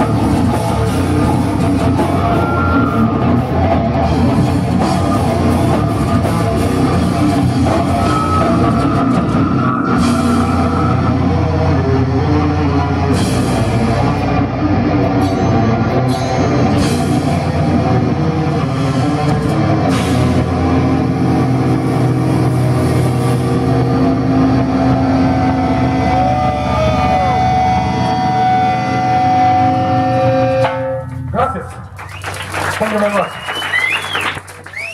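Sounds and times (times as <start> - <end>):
death metal band playing live: 0.0 - 31.8.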